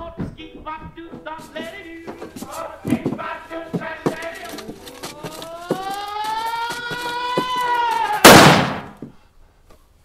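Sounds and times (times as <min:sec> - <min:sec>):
loud gunshot: 0:08.2 - 0:09.0.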